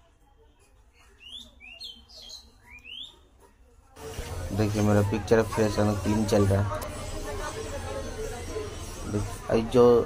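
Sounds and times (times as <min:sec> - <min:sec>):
small bird chirping: 0:01.0 - 0:03.2.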